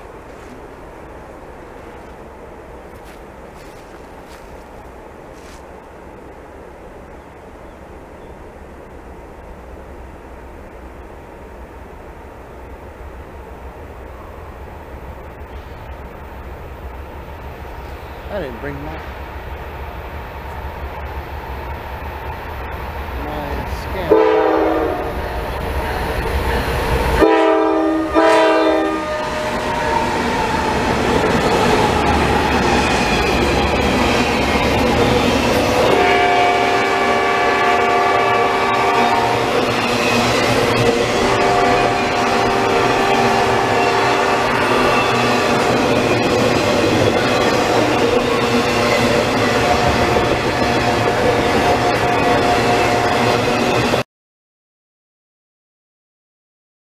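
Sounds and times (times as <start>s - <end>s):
train rumbling past: 0.0s - 54.0s
locomotive horn blasts: 24.1s - 25.2s, 27.2s - 30.0s, 35.9s - 39.5s, 41.2s - 45.0s
wheels clacking on rails: 28.1s - 54.0s.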